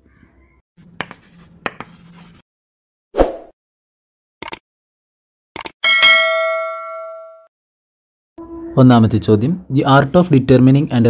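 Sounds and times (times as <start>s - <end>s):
chalk scratching on blackboard: 0.8s - 2.4s
sharp chalk taps: 0.9s - 2.1s.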